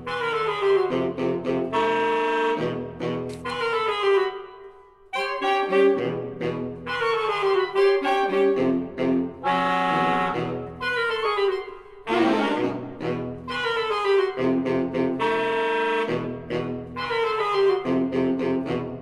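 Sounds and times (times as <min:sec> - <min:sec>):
saxophone quartet playing: 0:00.0 - 0:19.0.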